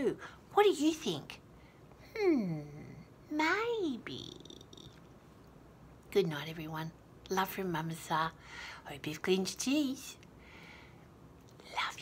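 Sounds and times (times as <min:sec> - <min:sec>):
woman whispering: 0:11.6 - 0:12.0.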